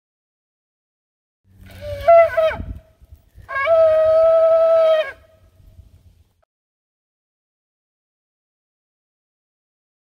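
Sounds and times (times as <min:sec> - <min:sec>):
shofar blasts: 0:01.7 - 0:05.5.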